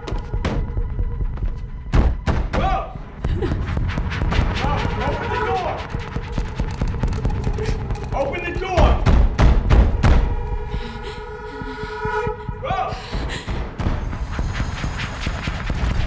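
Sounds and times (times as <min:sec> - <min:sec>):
film score drone: 0:03.0 - 0:16.0.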